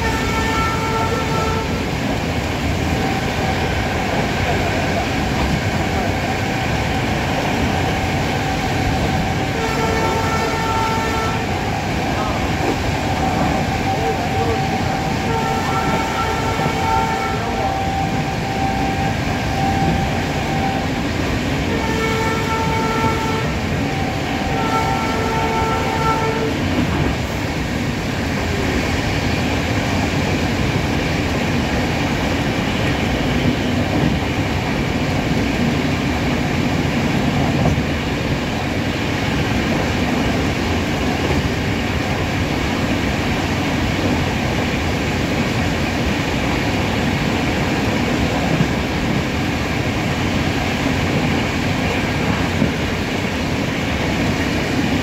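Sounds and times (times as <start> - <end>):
train horn blasts: 0.0 - 2.0, 9.1 - 11.8, 13.2 - 27.1
train wheels rumbling on rails: 0.0 - 55.0.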